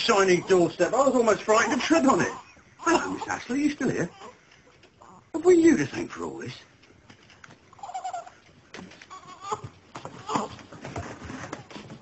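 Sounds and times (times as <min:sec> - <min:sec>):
baby babbling: 0:09.1 - 0:09.6.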